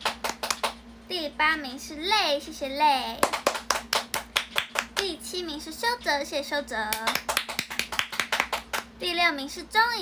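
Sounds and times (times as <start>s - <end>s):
hand clapping: 0.0s - 0.8s, 3.2s - 5.1s, 6.9s - 8.9s.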